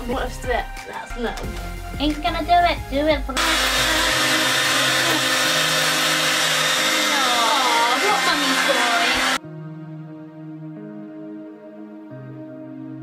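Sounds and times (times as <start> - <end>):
background music: 0.0 - 13.0
hair dryer running: 3.4 - 9.4.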